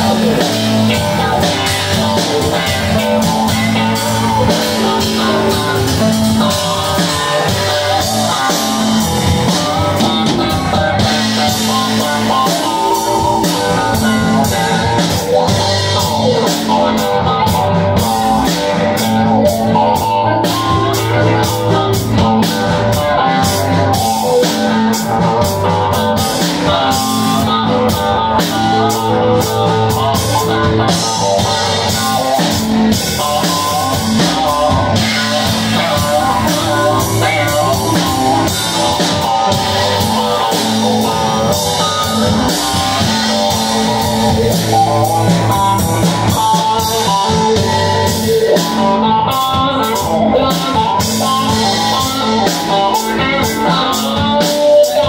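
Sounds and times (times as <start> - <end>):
cymbals keeping a beat: 0.0 - 55.0
drum kit: 0.0 - 55.0
electric guitar: 0.0 - 55.0
keyboard: 0.0 - 55.0.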